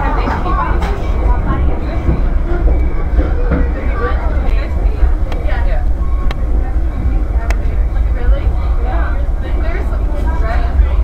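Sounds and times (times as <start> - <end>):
vehicle rumble inside cabin: 0.0 - 11.0
voices talking: 0.0 - 11.0.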